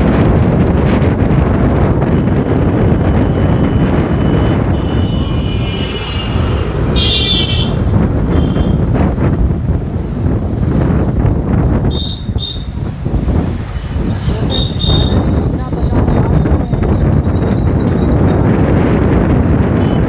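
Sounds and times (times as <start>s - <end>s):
wind buffeting microphone: 0.0s - 20.0s
vehicle horn: 2.9s - 8.8s, 11.9s - 12.8s, 14.4s - 15.3s, 19.7s - 20.0s.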